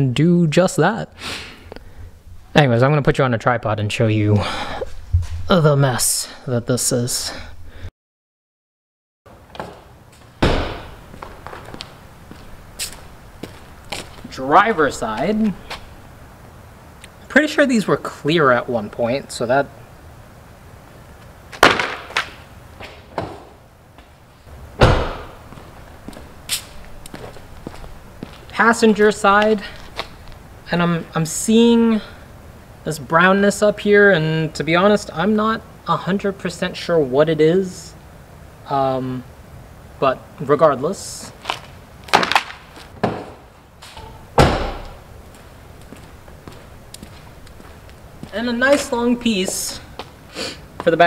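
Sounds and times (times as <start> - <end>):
heavy thump: 4.9 - 5.6, 10.4 - 11.8, 24.8 - 25.6, 44.0 - 45.0
heavy slam: 10.4 - 11.4, 24.8 - 25.5, 44.0 - 45.1
floor mats slapping: 21.6 - 22.4.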